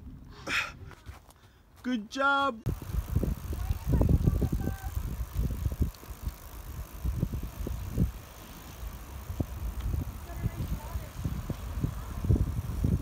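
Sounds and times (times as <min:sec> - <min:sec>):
gusty wind on microphone: 0:02.7 - 0:13.0.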